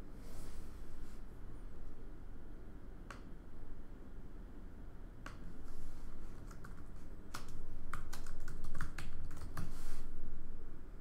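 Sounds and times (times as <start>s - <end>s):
typing on keyboard: 6.3s - 9.7s.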